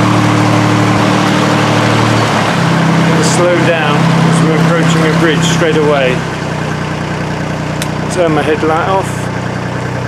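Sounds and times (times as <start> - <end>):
boat diesel engine running: 0.0 - 10.0.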